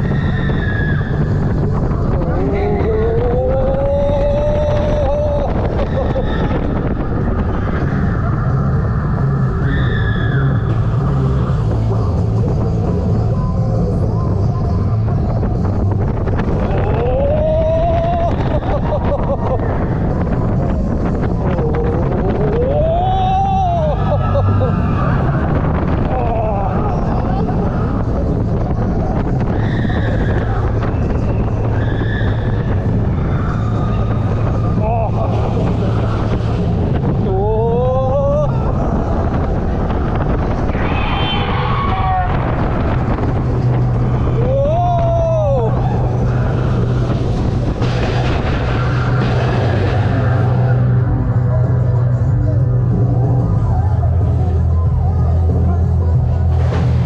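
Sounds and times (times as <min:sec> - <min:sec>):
roller coaster rumbling: 0:00.0 - 0:57.0
wind buffeting microphone: 0:00.0 - 0:57.0.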